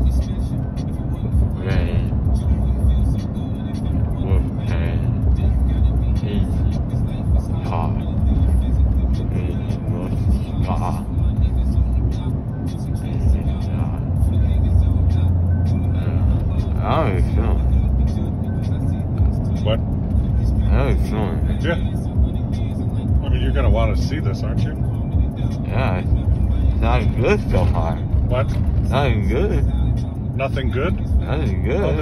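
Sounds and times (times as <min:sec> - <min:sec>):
car road and engine rumble: 0:00.0 - 0:32.0.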